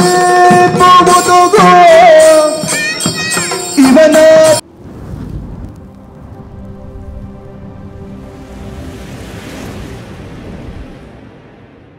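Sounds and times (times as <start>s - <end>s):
low rumble and rushing noise: 4.6s - 11.9s.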